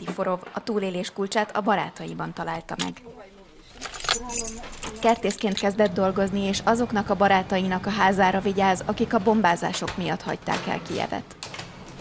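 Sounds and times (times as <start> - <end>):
metal keys jangling: 3.6 - 5.9.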